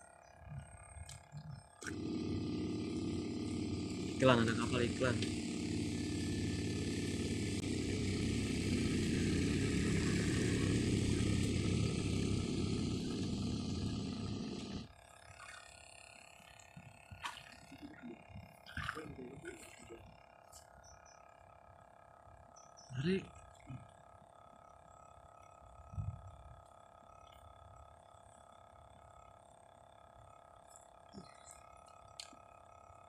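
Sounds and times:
motorboat engine running: 0.0s - 33.0s.

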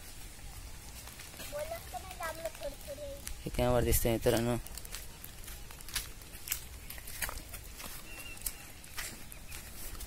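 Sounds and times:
footsteps crunching on stony path: 0.0s - 10.0s.

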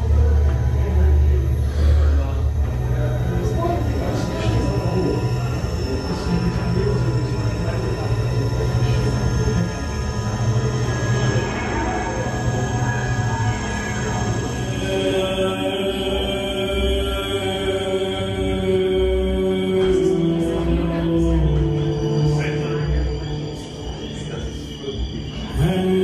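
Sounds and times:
dark atmospheric music: 0.0s - 26.0s
deep low drone: 0.0s - 26.0s
sustained high tones: 0.0s - 26.0s.

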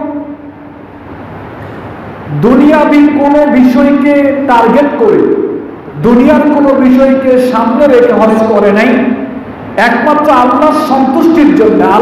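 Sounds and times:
man preaching over amplification: 0.0s - 0.5s, 2.3s - 12.0s
low room hum: 0.0s - 12.0s.

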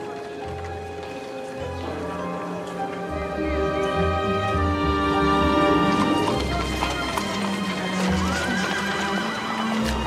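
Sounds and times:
hooves clip-clopping: 0.0s - 10.0s
orchestral score: 0.0s - 10.0s.

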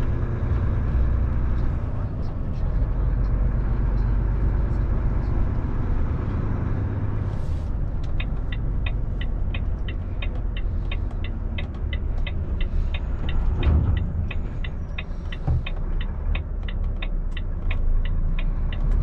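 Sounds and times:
diesel engine rumble: 0.0s - 19.0s
road noise: 0.0s - 19.0s
turn signal ticking: 7.8s - 19.0s.

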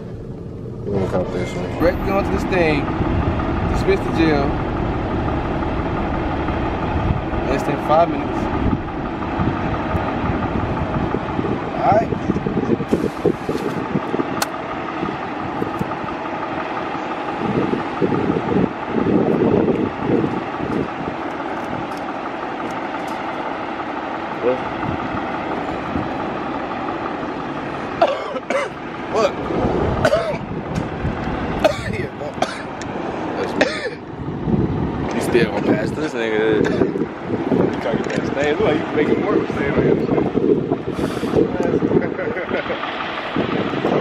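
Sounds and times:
indistinct voices: 0.0s - 12.2s, 27.9s - 30.7s
traffic engine hum: 0.0s - 44.0s.

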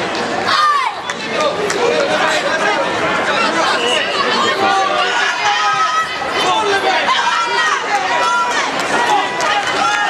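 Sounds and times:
crowd chatter in a hall: 0.0s - 10.0s.

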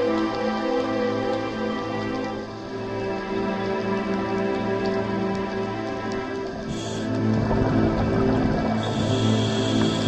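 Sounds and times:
sustained layered background music: 0.0s - 10.0s.

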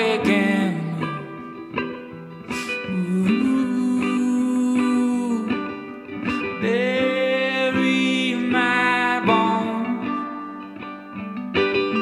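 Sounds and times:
man singing wordless notes: 0.0s - 1.4s, 2.8s - 10.4s
acoustic guitar picking: 0.0s - 12.0s.

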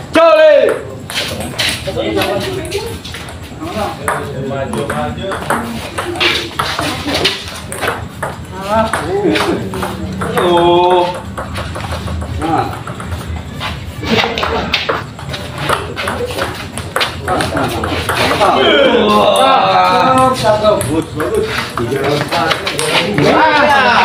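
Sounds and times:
men calling out loudly: 18.4s - 20.5s, 23.0s - 24.0s.

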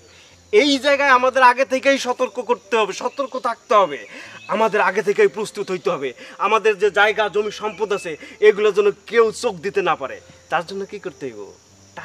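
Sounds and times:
insects droning: 0.0s - 12.0s
man speaking: 0.6s - 11.6s.

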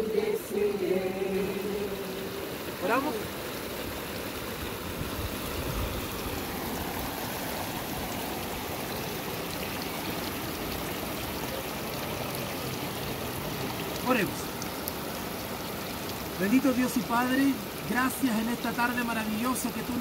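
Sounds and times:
stream water running over rocks: 0.0s - 20.0s.

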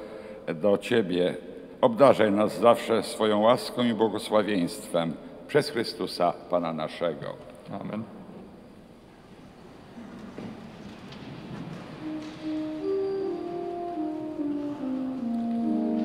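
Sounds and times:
soft organ music: 11.4s - 16.0s.

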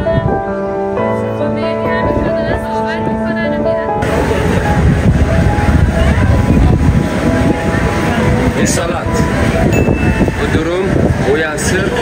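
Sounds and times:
low street rumble: 1.7s - 12.0s.

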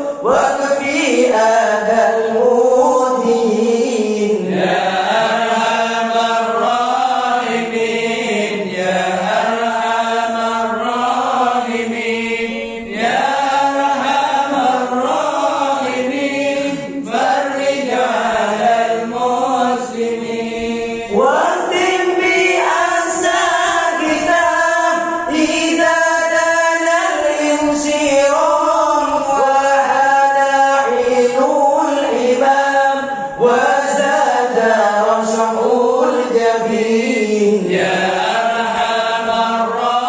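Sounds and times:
men chanting into microphones: 0.0s - 40.0s.

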